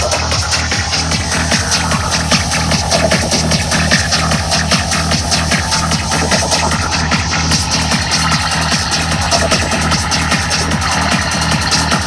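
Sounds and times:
loud dark psytrance music: 0.0s - 12.0s.

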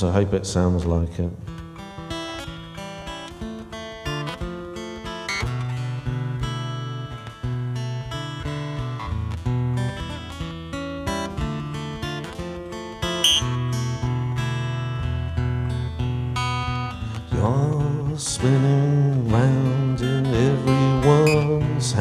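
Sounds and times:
acoustic guitar playing: 1.4s - 22.0s.

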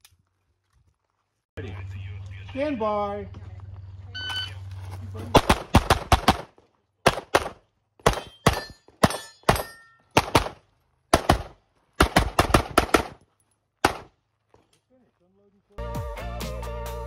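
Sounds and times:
brief ringing tone: 4.2s - 4.6s
pistol shots: 5.3s - 13.2s, 13.8s - 14.2s.

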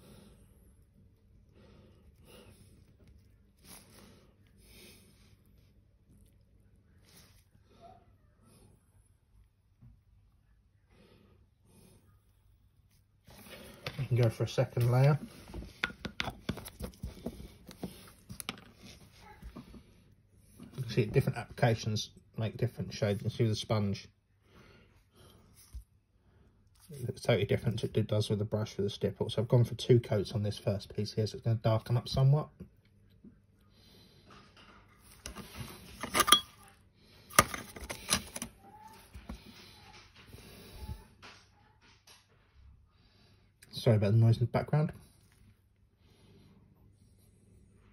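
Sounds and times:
hard objects knocking and rattling: 15.6s - 18.7s.

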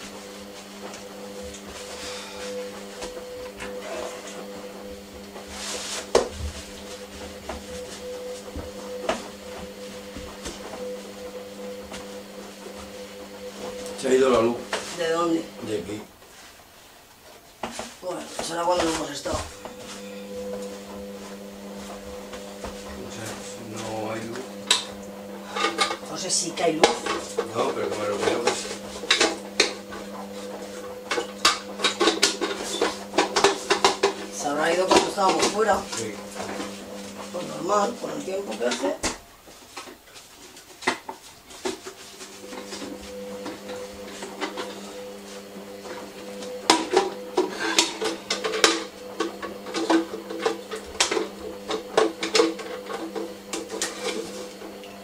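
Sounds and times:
appliance hum: 0.0s - 55.0s.

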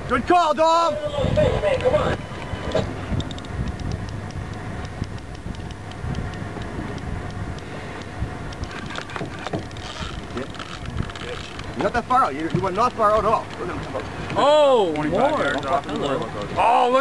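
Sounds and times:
steady low rumble: 0.0s - 17.0s
fishing reel ticking: 3.1s - 17.0s.

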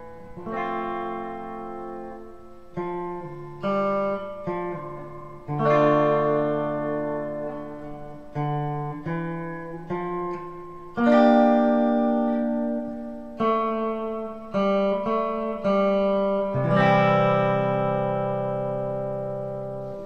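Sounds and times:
electric guitar notes and chord: 0.0s - 20.0s.

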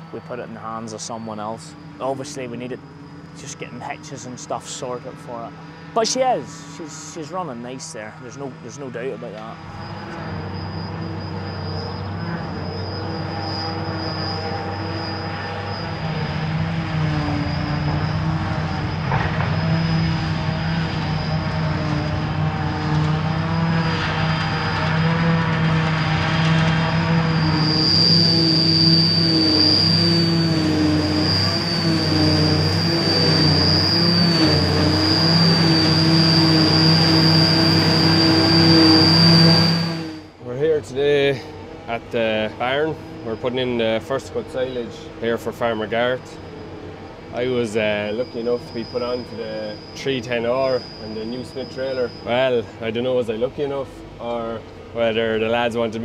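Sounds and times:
forage harvester whine: 0.0s - 56.0s
tractor engine drone: 0.0s - 56.0s.

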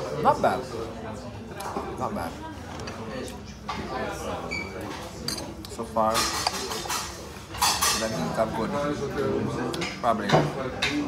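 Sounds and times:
fork clinking and scraping on plate: 4.9s - 8.2s.

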